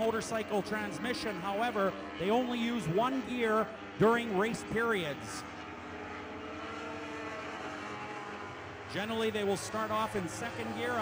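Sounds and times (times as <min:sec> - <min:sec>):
motorcycle engines droning: 0:00.0 - 0:11.0.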